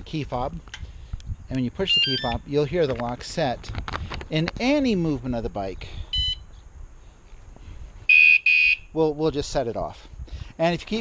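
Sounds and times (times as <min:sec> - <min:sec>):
motorcycle alarm chirp: 0:01.8 - 0:02.4, 0:06.1 - 0:06.5, 0:08.1 - 0:08.9.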